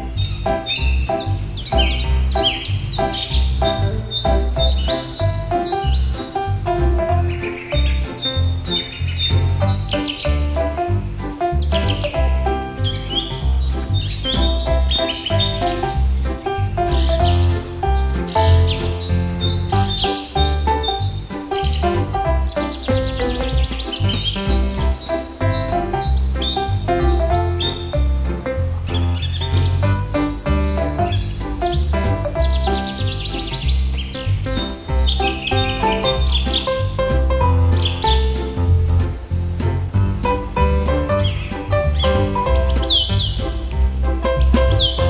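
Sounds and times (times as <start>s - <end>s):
birds chirping: 0.0s - 45.0s
music with steady beat: 0.0s - 45.0s.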